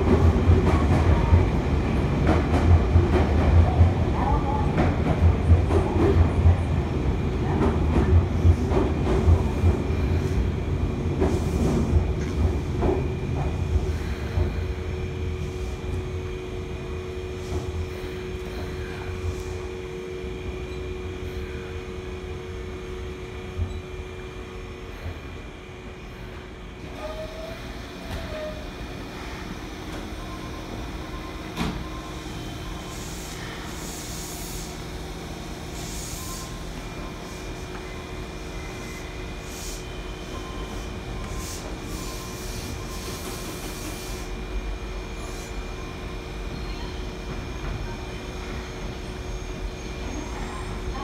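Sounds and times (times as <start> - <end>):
electric train rumbling past: 0.0 - 51.0.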